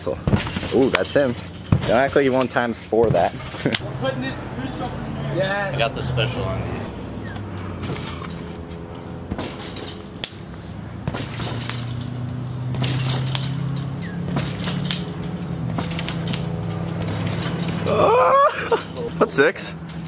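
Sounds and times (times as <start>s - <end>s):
trampoline springs knocking and creaking: 0.0s - 3.8s, 7.0s - 20.0s
steady low hum: 6.8s - 20.0s.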